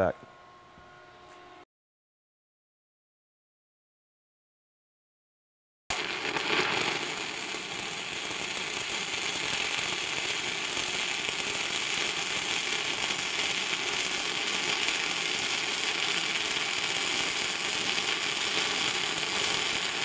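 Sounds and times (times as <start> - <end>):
welding arc crackling: 5.9 - 20.0.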